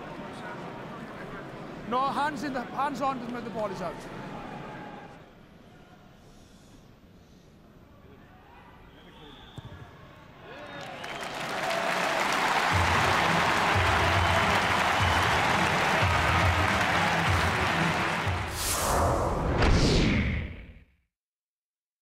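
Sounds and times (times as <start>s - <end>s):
hushed stadium crowd: 7.8s - 18.7s
crowd cheering and applauding: 10.5s - 18.8s.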